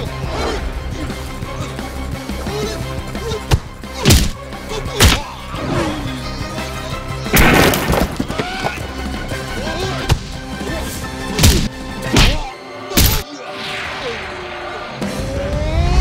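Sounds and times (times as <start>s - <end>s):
action background music: 0.0s - 16.0s
punch and kick hits: 3.5s - 4.4s, 5.0s - 5.2s, 11.4s - 13.2s
body crashing onto table: 7.4s - 8.9s.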